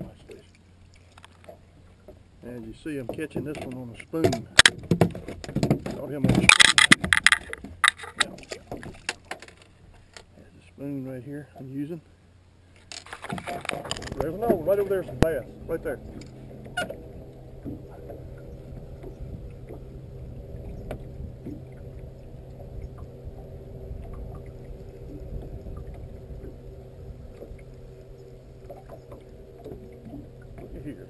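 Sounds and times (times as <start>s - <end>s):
boat motor hum: 0.0s - 31.0s
wind and water rumble: 0.0s - 31.0s
fishing reel clicks: 6.5s - 8.2s.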